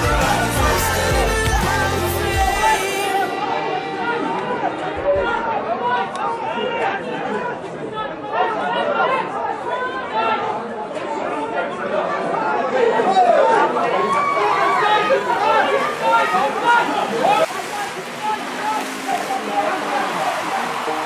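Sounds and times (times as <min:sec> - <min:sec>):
crowd babble: 0:00.0 - 0:21.0.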